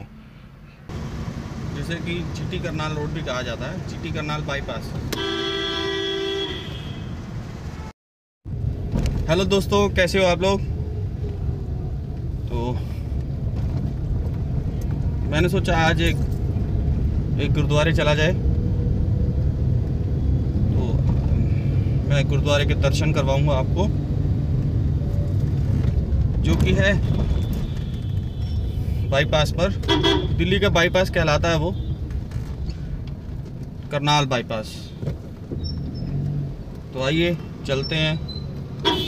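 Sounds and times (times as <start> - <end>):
car and traffic rumble: 0.0 - 39.0
vehicle horn: 5.1 - 7.2, 27.0 - 28.8, 29.8 - 30.4.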